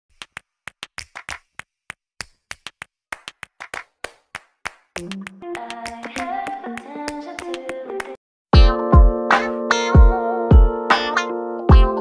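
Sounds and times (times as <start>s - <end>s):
sharp hand claps: 0.1s - 8.2s.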